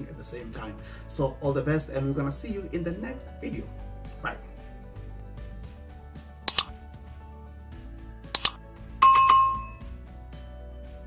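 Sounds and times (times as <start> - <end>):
soft background music: 0.0 - 11.0
mouse double clicks: 6.5 - 6.7, 8.4 - 9.4
notification bell ding: 8.4 - 9.8.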